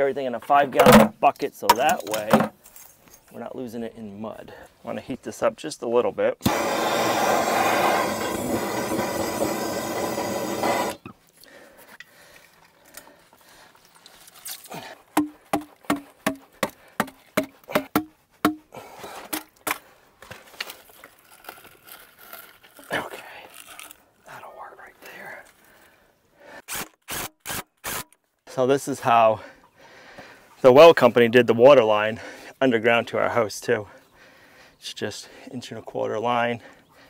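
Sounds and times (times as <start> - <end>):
gas torch hissing: 6.4 - 11.0
fitting knocking into pipe: 15.2 - 18.6.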